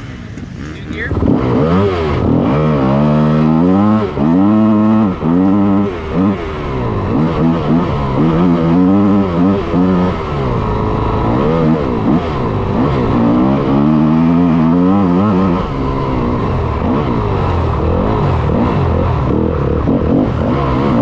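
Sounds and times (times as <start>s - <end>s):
motorcycle engine revving hard: 0.0s - 21.0s.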